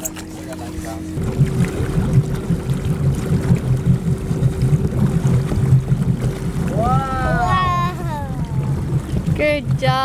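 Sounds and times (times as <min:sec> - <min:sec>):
motorboat engine throttling up: 0:00.0 - 0:10.0.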